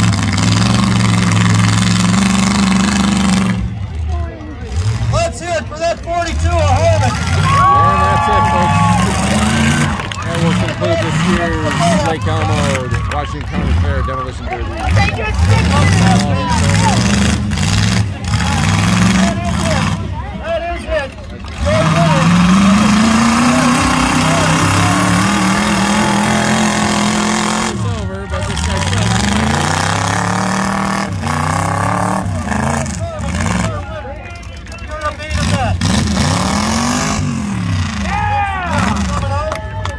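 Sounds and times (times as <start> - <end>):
pickup truck engines revving: 0.0 - 39.9.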